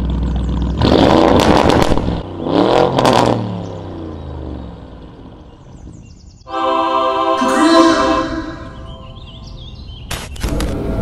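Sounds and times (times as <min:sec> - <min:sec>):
soundtrack music: 0:06.5 - 0:09.4
faint warbling chirp: 0:06.5 - 0:09.9.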